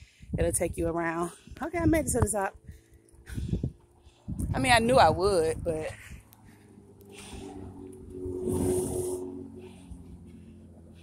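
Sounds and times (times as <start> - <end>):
steady low hum: 1.3 - 11.0
person breathing hard: 6.0 - 8.0.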